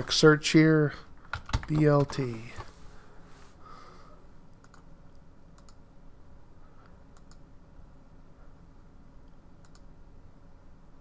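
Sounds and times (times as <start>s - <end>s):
faint low hum: 0.0s - 11.0s
computer mouse clicking: 4.5s - 5.8s, 7.1s - 7.5s, 9.6s - 9.9s.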